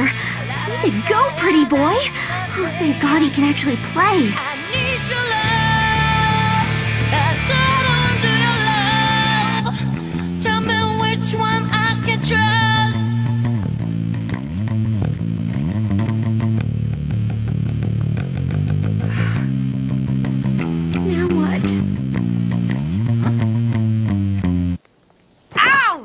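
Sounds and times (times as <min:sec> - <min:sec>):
rock band playing: 0:00.0 - 0:11.2, 0:13.1 - 0:24.8
sliding bass guitar notes: 0:00.0 - 0:24.8.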